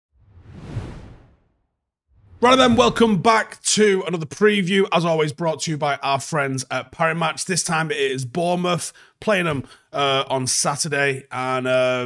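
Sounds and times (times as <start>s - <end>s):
whoosh sound effect: 0.2s - 1.6s.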